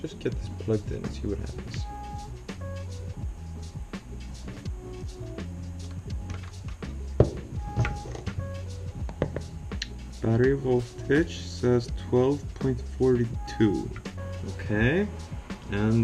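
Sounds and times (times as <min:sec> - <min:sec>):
mellow background music: 0:00.0 - 0:16.0
plugs and cables clicking: 0:06.2 - 0:06.7.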